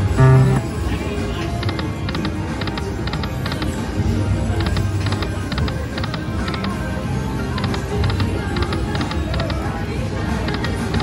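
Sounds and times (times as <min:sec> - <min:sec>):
slot machine electronic game sounds: 0:00.0 - 0:00.8.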